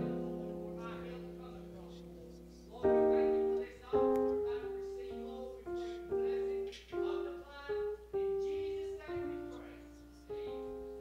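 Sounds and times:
slow electric keyboard music: 0:00.0 - 0:11.0.

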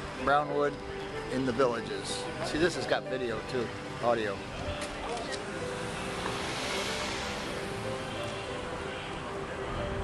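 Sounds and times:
faint background music: 0:00.0 - 0:10.0
vehicle passing: 0:03.8 - 0:10.0.

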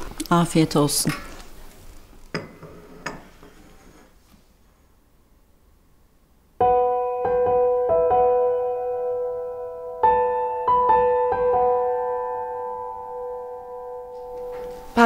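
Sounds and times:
piano playing slow chords: 0:06.6 - 0:15.0.

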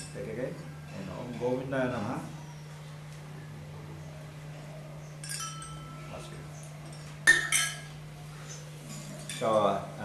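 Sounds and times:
low steady hum: 0:00.0 - 0:10.0
metal spoon clinking on metal cup: 0:05.2 - 0:06.0, 0:06.8 - 0:07.9, 0:09.0 - 0:09.6.

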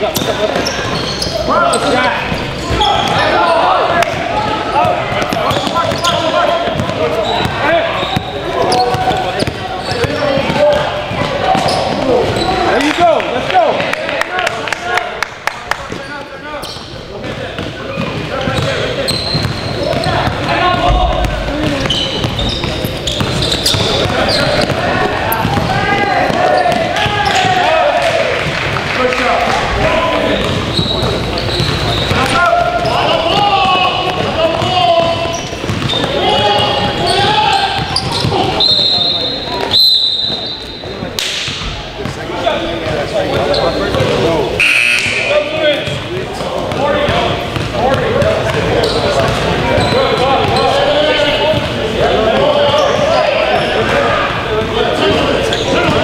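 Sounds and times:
players and spectators voices: 0:00.0 - 0:56.0
basketball bouncing on gym court: 0:04.8 - 0:12.5, 0:16.7 - 0:27.7, 0:30.3 - 0:38.6, 0:45.8 - 0:50.7
referee's whistle blasts: 0:38.0 - 0:40.8, 0:44.6 - 0:45.5.

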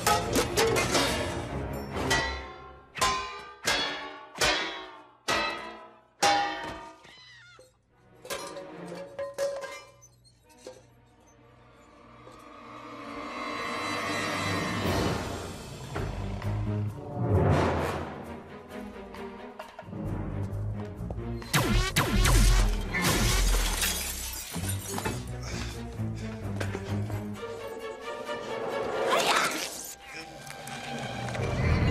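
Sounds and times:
metal and glass clattering: 0:06.2 - 0:11.0, 0:22.5 - 0:25.3
glass shattering: 0:21.6 - 0:25.3.

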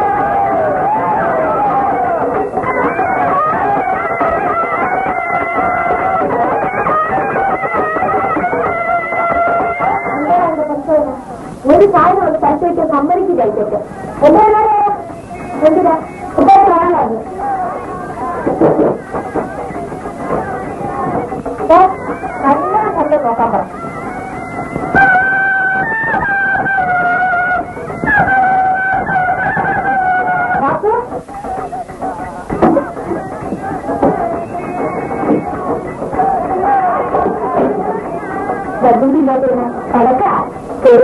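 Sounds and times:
old film music: 0:00.0 - 0:41.0.

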